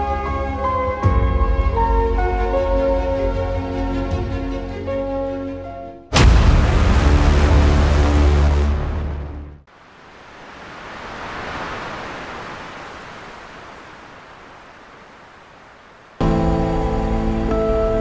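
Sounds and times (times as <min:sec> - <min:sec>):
gentle background music: 0:16.2 - 0:18.0.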